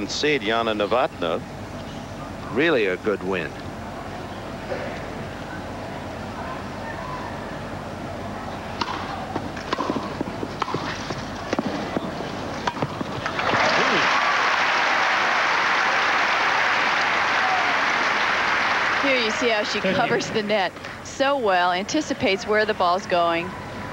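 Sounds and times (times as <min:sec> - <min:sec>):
crowd murmur: 0:03.6 - 0:12.6, 0:16.8 - 0:21.2
racket hitting tennis ball: 0:08.8 - 0:13.3
crowd applause: 0:13.2 - 0:20.5.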